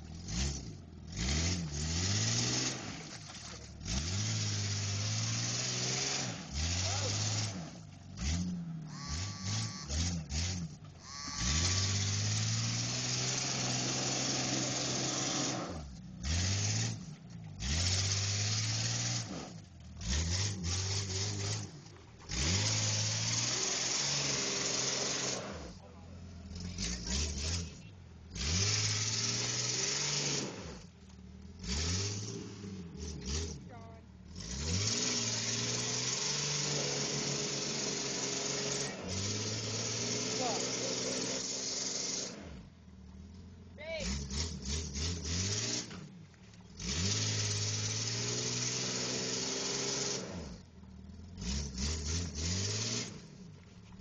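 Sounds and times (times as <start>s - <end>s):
engine revving: 0.0s - 54.0s.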